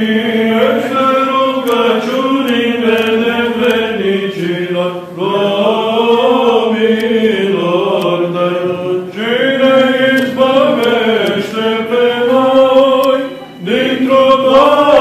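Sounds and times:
male voices chanting: 0.0s - 15.0s.

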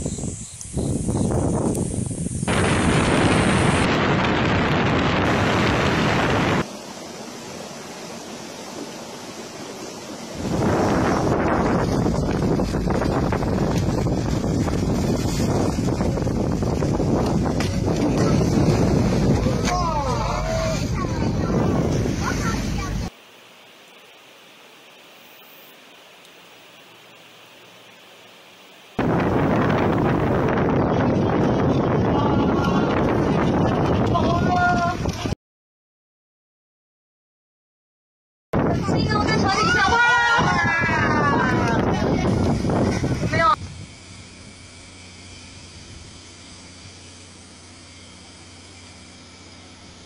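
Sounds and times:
wind buffeting microphone: 0.0s - 6.7s, 10.2s - 23.1s, 29.0s - 35.4s, 38.6s - 44.8s
low hum: 1.3s - 23.1s, 41.0s - 50.0s
open sea: 1.7s - 23.2s, 23.8s - 35.4s, 38.6s - 50.0s
faint steady hiss: 22.3s - 29.1s.

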